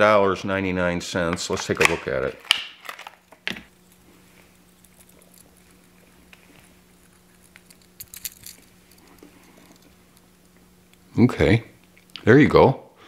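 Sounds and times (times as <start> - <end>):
plastic packaging rustling and clicking: 1.6 - 3.7.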